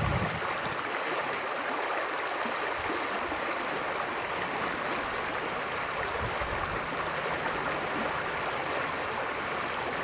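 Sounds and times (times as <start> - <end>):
river flowing over rocks: 0.0 - 10.0.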